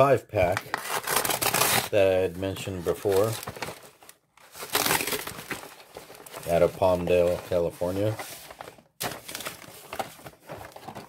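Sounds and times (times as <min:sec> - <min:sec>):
paper envelope rustling: 0:00.4 - 0:11.0.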